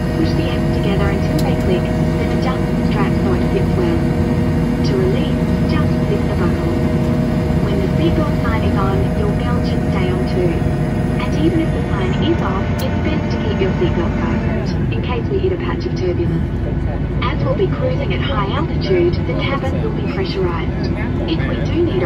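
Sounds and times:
airliner engine drone: 0.0s - 22.0s
indistinct voices talking: 0.0s - 22.0s.

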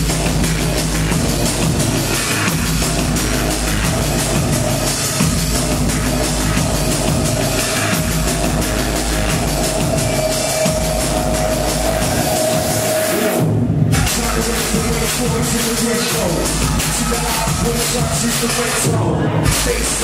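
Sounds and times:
drum and bass mix: 0.0s - 20.0s.

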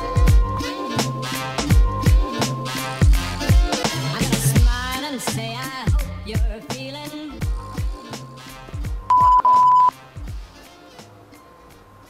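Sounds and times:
censor bleep: 9.1s - 9.9s.

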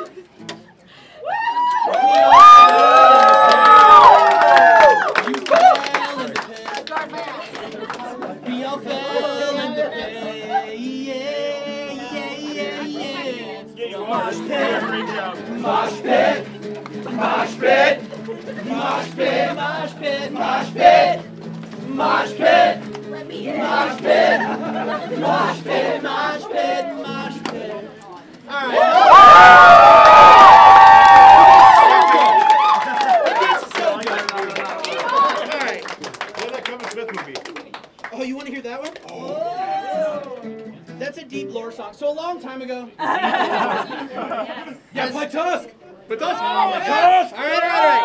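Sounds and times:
crowd cheering and yelling: 1.2s - 6.4s, 28.5s - 35.5s, 39.2s - 40.5s, 46.2s - 48.0s
crowd voices singing along: 7.5s - 28.9s
guitar playing steady chords: 8.0s - 28.4s
loud shouted vocals: 8.3s - 16.5s, 17.1s - 21.2s, 23.4s - 27.8s, 28.5s - 33.7s, 46.3s - 48.0s.

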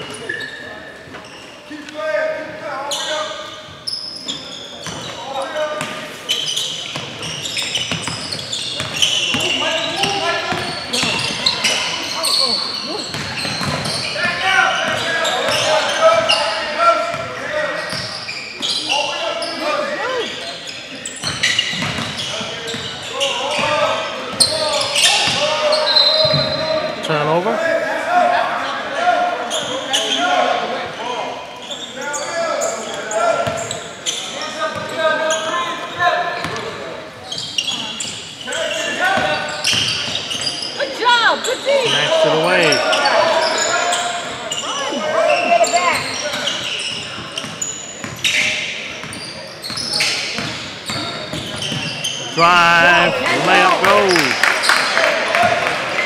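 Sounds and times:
people calling out: 52.3s - 54.5s.

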